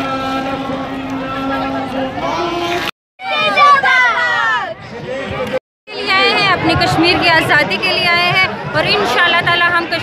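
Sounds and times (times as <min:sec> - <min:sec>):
crowd noise: 0:00.0 - 0:10.0.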